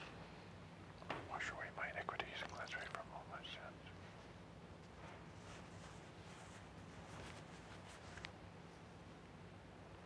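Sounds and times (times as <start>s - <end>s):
man whispering: 1.2s - 4.0s.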